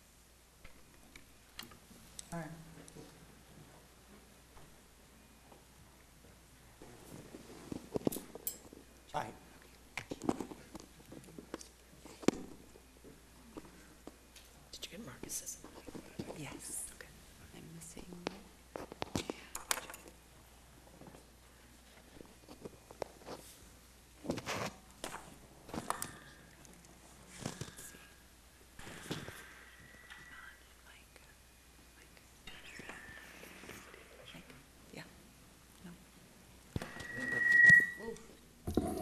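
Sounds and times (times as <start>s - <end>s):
whispered murmured talk: 13.4s - 20.1s, 30.2s - 36.2s.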